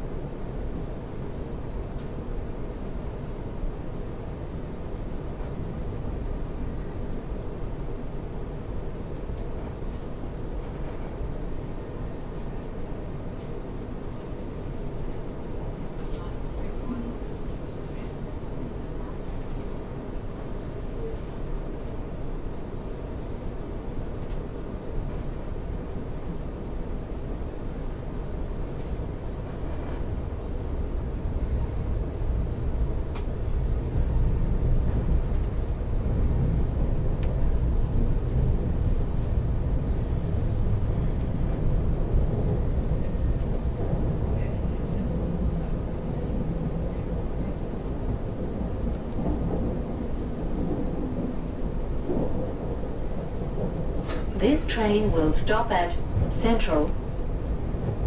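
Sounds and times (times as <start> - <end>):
train wheels rumbling on track: 0.0 - 58.0.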